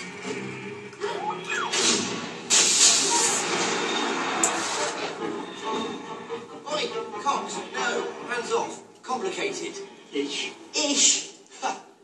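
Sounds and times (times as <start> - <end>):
loud rushing hiss: 1.7 - 3.8.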